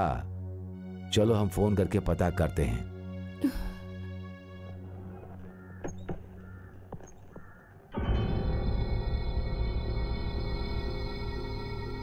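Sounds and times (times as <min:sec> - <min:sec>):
short bird calls: 0:05.1 - 0:07.7.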